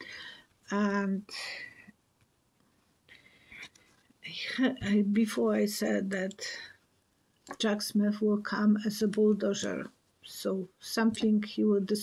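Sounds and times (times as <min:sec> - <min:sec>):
woman whispering: 0:00.9 - 0:01.9, 0:04.2 - 0:05.0.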